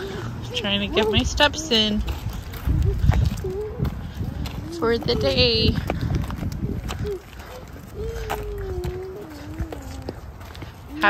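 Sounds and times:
footsteps: 0:00.0 - 0:11.0
stroller wheels rolling on asphalt: 0:00.0 - 0:11.0
wind rumble: 0:00.0 - 0:11.0.

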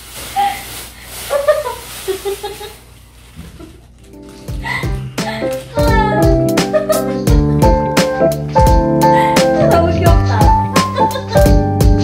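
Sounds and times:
plastic bag crinkling: 0:00.0 - 0:06.2
woman's voice: 0:05.7 - 0:06.4, 0:09.2 - 0:11.5.

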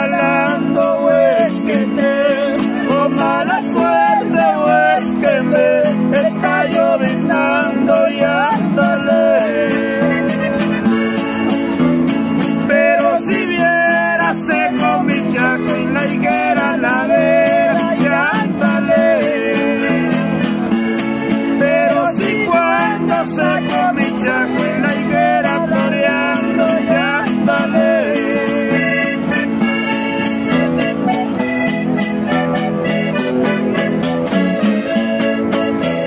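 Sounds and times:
strummed acoustic guitar: 0:00.0 - 0:36.0.

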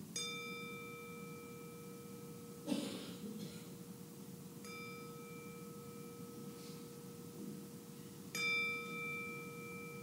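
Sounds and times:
meditation bell ringing: 0:00.0 - 0:02.7, 0:03.7 - 0:10.0.

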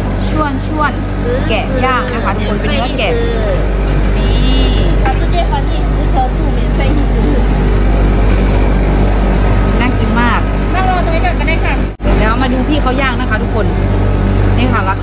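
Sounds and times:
steady low hum: 0:00.0 - 0:15.0
people talking: 0:00.2 - 0:07.8, 0:09.6 - 0:13.9, 0:14.5 - 0:15.0.

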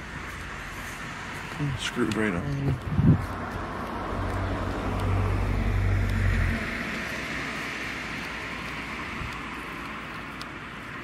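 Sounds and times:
tyre noise on road: 0:00.0 - 0:11.0
car driving past: 0:03.4 - 0:09.2.

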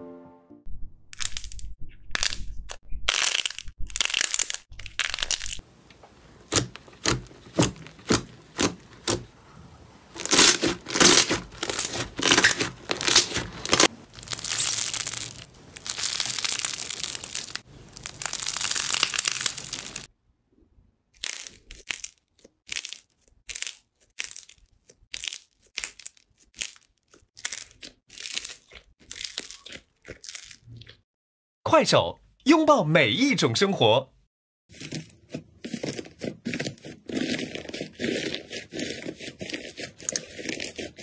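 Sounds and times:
slime crackling as kneaded: 0:03.1 - 0:09.3, 0:10.0 - 0:20.1, 0:21.2 - 0:30.6, 0:35.7 - 0:41.0.

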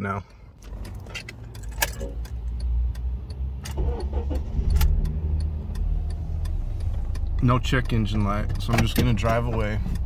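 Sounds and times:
car engine starting and idling: 0:00.0 - 0:10.0
light regular ticking: 0:00.0 - 0:10.0.

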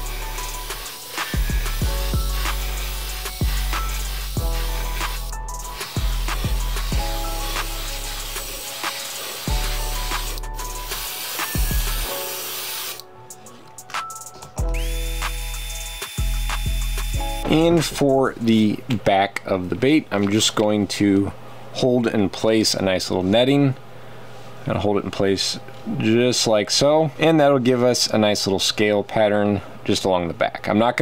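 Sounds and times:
background music with bass line: 0:00.0 - 0:12.2, 0:13.4 - 0:18.2
airbrush hissing: 0:00.0 - 0:13.0, 0:14.7 - 0:17.8.

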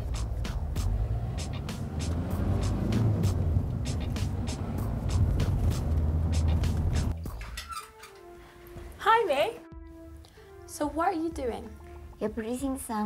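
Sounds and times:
car engine: 0:00.0 - 0:07.2
road rumble: 0:00.0 - 0:07.2
music with steady beat: 0:00.0 - 0:07.5.

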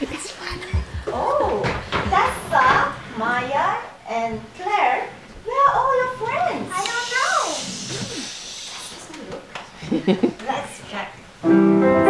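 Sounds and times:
young children talking: 0:06.2 - 0:09.4.

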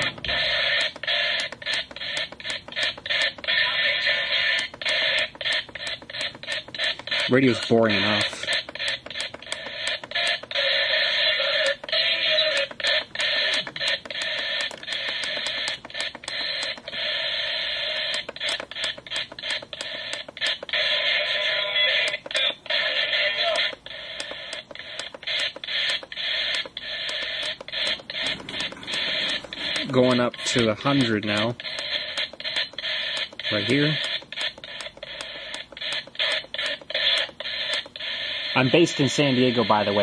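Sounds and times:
garbled static-laden radio: 0:00.0 - 0:40.0.

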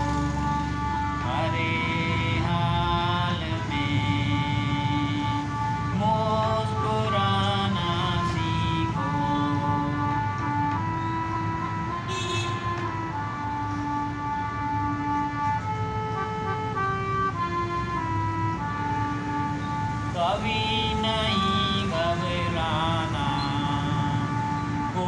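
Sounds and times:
keyboard melody of held notes: 0:00.0 - 0:25.0.

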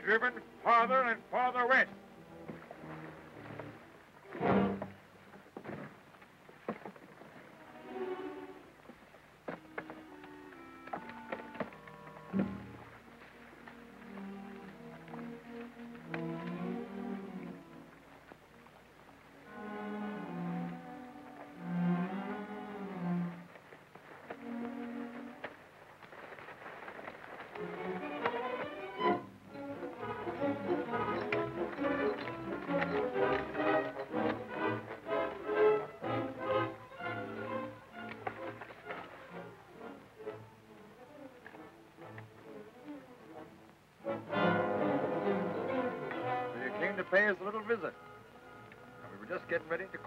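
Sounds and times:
orchestral music with bowed strings: 0:00.0 - 0:50.0.

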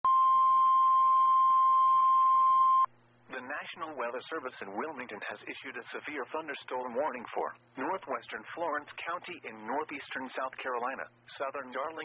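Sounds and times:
steady alarm tone: 0:00.0 - 0:02.9.

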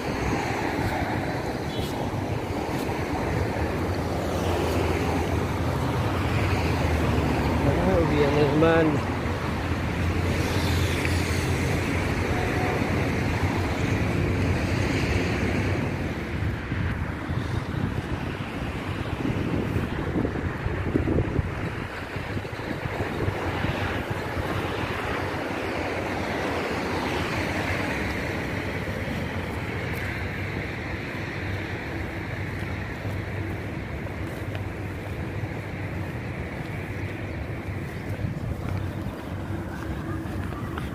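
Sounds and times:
road traffic passing: 0:00.0 - 0:40.9
wind on phone microphone: 0:09.1 - 0:31.4, 0:32.0 - 0:40.9.

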